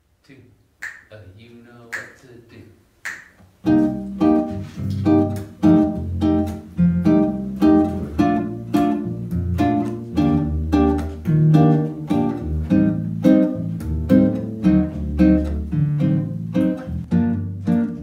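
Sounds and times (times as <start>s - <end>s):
classical guitar playing: 3.6s - 18.0s.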